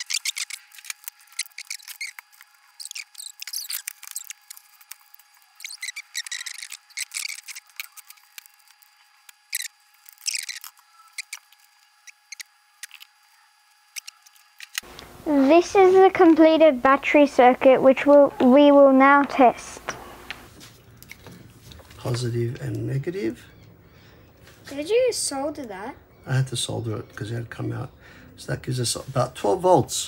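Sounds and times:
wire cutters clicking and scraping: 0.0 - 15.0.

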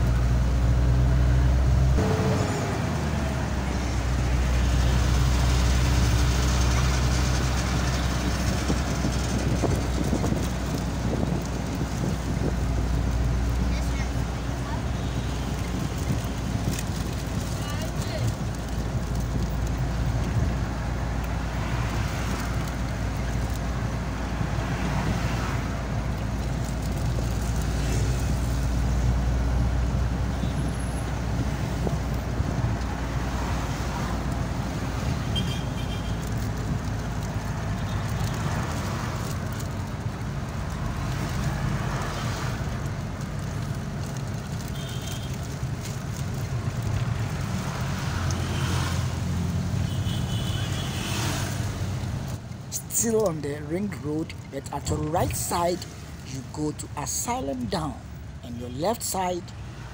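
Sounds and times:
engine hum and road noise: 0.0 - 59.9
surrounding traffic: 0.0 - 59.9.

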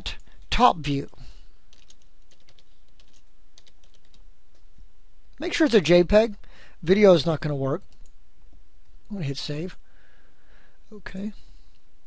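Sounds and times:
low steady hum: 0.0 - 12.0
computer keyboard typing: 1.7 - 4.2.

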